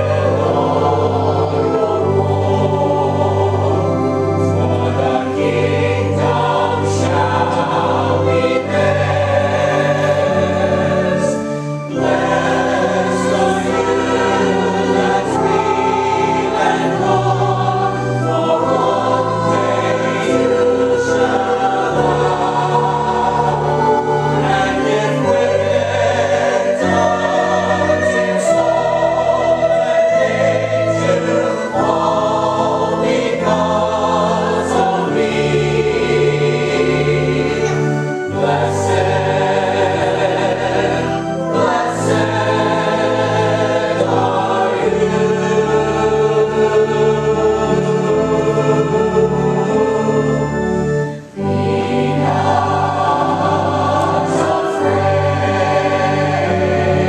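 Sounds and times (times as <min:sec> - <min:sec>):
church choir singing: 0:00.0 - 0:57.0.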